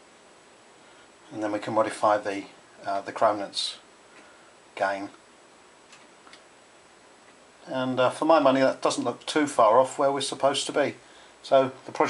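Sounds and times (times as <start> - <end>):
faint clicks: 5.9 - 6.5.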